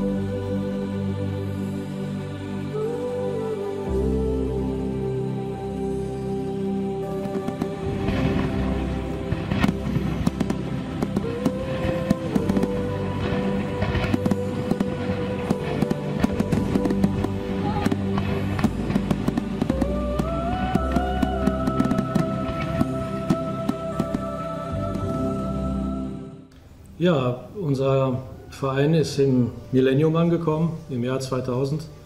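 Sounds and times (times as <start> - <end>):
background music with held notes: 0.0 - 32.0
fireworks bangs and crackles: 7.1 - 25.1.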